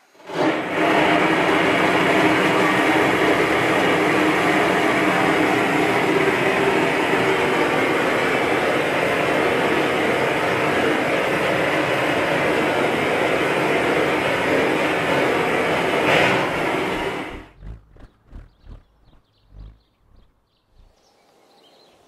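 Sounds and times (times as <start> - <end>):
blowtorch flame hissing: 0.0 - 3.2, 6.0 - 17.8
faint low thumps: 16.9 - 21.0.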